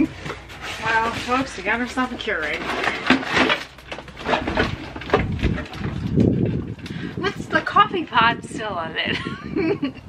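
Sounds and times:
cardboard box and plastic rustling: 0.0 - 8.1
woman laughing: 9.0 - 10.0.

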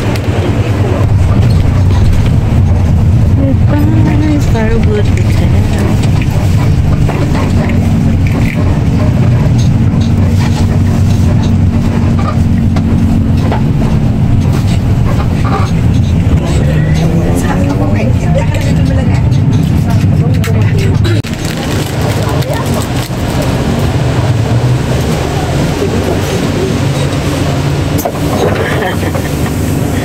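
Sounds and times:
bus engine and road noise: 0.0 - 30.0.

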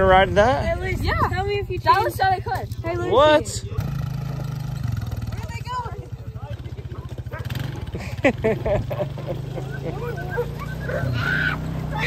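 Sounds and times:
voices calling out: 0.5 - 12.0
utility vehicle engine running: 0.7 - 12.0.

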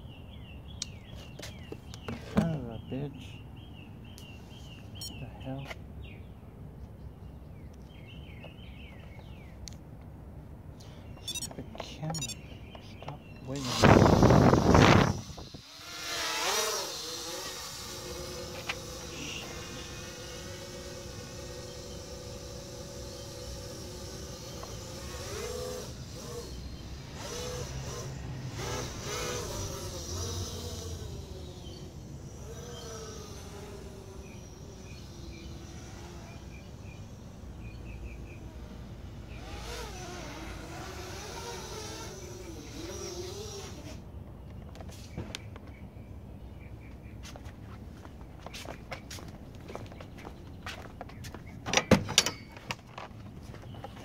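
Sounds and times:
quadcopter motors whining: 10.8 - 45.7.

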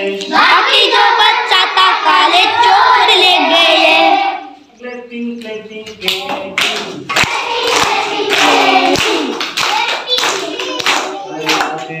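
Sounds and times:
children singing: 0.0 - 4.8, 7.2 - 12.0
sharp uneven handclaps: 5.9 - 12.0.

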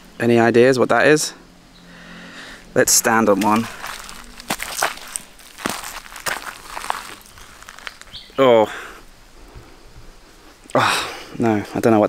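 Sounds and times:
footsteps on dry leaves: 2.8 - 8.4.

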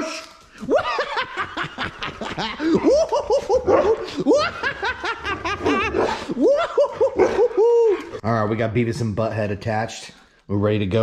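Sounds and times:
dogs whining and yipping: 5.6 - 8.2.

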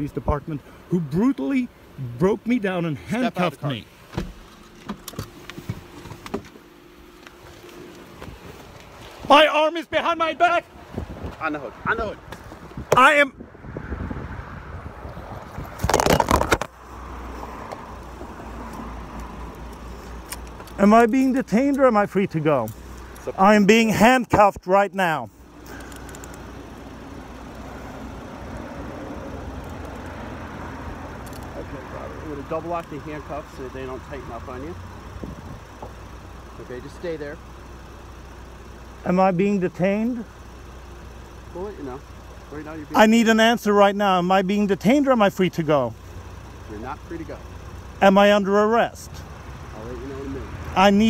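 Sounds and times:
vehicle engine idling: 0.0 - 51.0.

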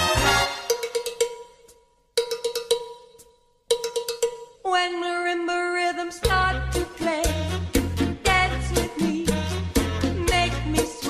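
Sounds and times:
latin dance band music: 0.0 - 1.5, 6.3 - 11.0.

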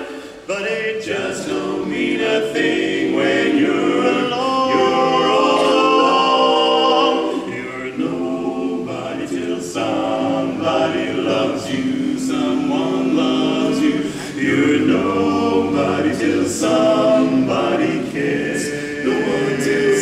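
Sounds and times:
male quartet singing a cappella: 0.0 - 20.0.

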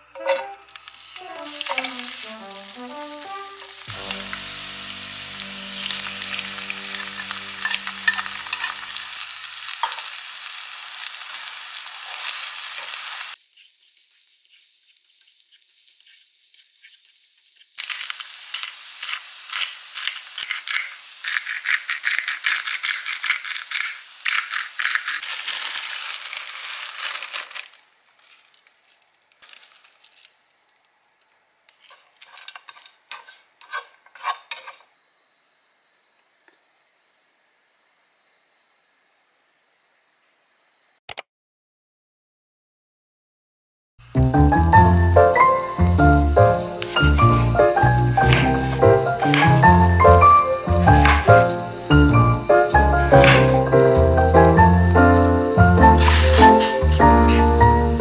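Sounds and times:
chopsticks scraping pan: 0.0 - 10.1, 12.0 - 25.3, 31.7 - 34.9, 46.6 - 51.6, 53.1 - 53.6, 55.8 - 57.6
bean sprouts sizzling in oil: 0.0 - 30.3, 31.8 - 34.8, 44.0 - 58.0.

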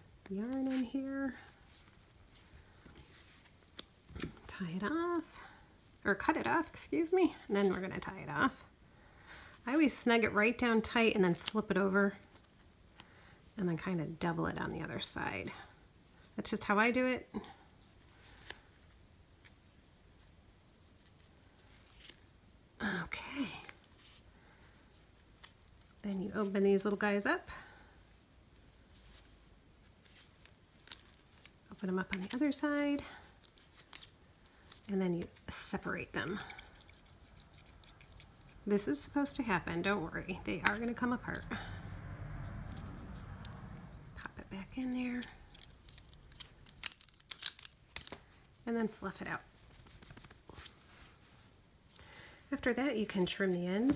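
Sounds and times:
yarn being pulled and knotted: 34.7 - 41.5.

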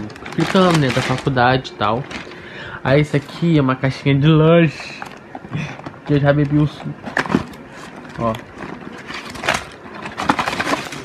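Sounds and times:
plastic snack packets crinkling: 0.0 - 4.0, 6.1 - 11.0.

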